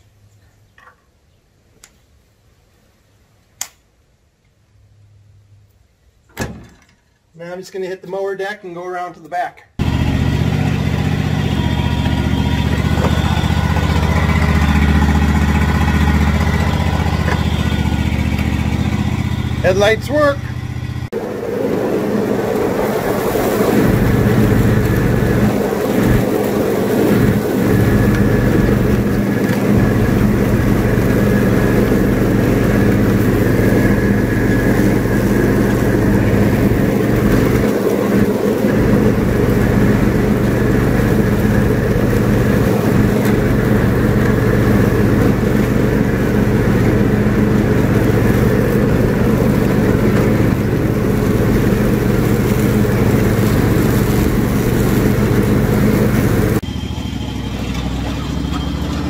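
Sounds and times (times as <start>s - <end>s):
riding lawn mower engine: 9.8s - 59.0s.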